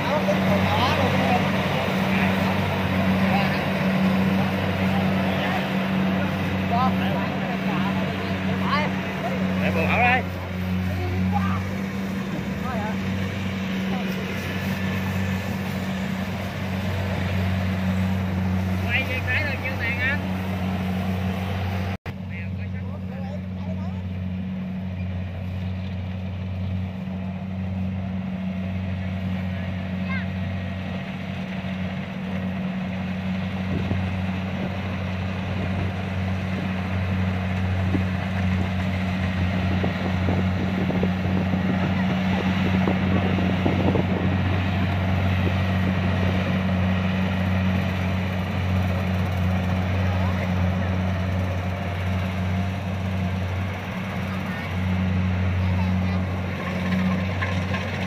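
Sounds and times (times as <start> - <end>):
combine harvester engine humming: 0.0 - 58.0.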